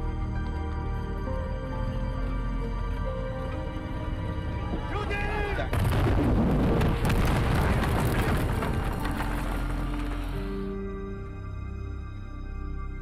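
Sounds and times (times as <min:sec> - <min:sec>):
dramatic orchestral music: 0:00.0 - 0:13.0.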